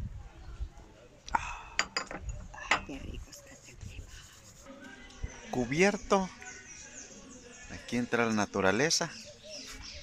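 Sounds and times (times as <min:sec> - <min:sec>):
ceramic cups clinking: 0:01.7 - 0:03.1.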